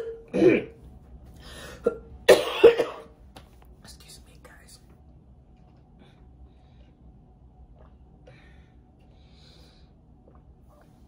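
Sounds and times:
woman coughing: 0.0 - 0.8, 1.8 - 3.1.

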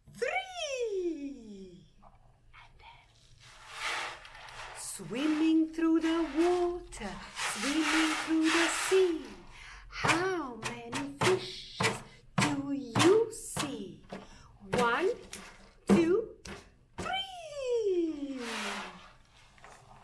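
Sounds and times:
ocean drum beads rolling: 3.6 - 9.4
woman's sliding vocal calls: 3.7 - 9.4.

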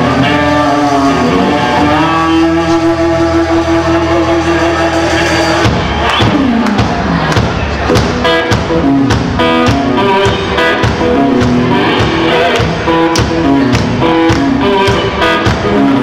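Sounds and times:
drums with falling pitch slide: 0.0 - 16.0
rhythm and blues band playing: 0.0 - 16.0.

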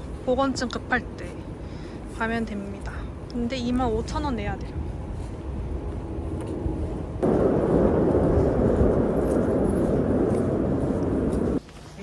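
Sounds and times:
low street rumble: 0.0 - 12.0
loud rushing noise: 7.2 - 11.6.

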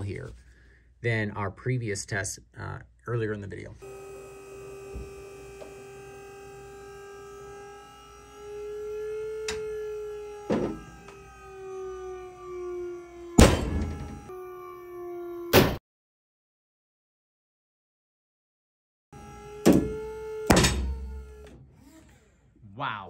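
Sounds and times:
motor whining: 3.8 - 15.6, 19.2 - 22.6.

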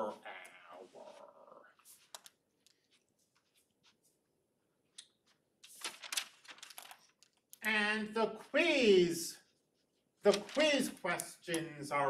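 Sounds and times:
man speaking: 0.0 - 1.8, 7.6 - 9.6, 10.2 - 12.0.

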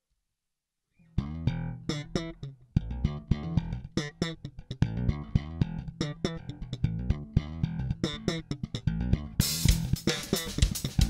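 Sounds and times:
bass guitar funk groove: 1.2 - 11.0.

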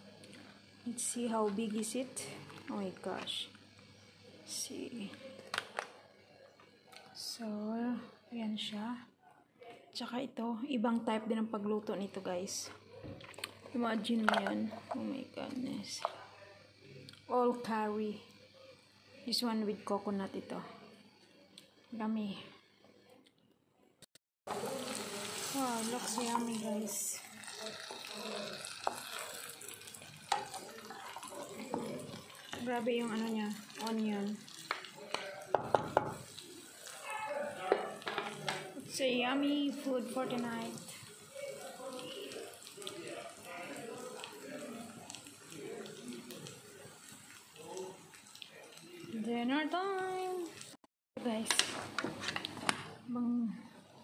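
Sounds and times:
running water hiss: 24.5 - 49.3
curry sizzling in a wok: 24.5 - 53.0
faint voice: 36.6 - 38.7.

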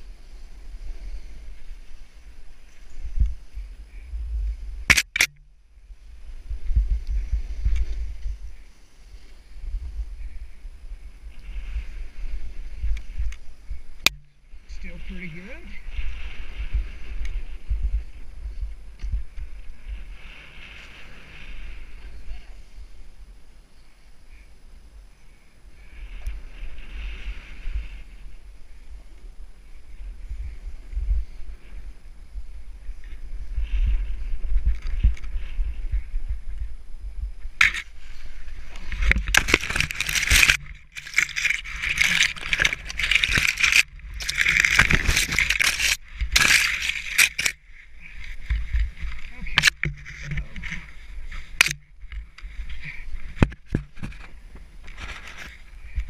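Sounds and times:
wind buffeting microphone: 0.0 - 23.6, 25.6 - 56.0
snowboard sliding over snow: 5.9 - 14.0, 14.6 - 51.6
crunching and scraping snow: 5.9 - 23.0, 25.7 - 56.0.

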